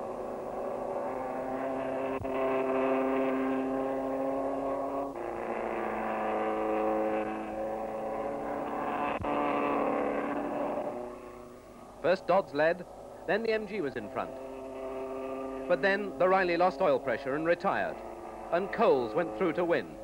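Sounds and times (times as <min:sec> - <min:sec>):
racing car engines at high revs: 0:00.0 - 0:20.0.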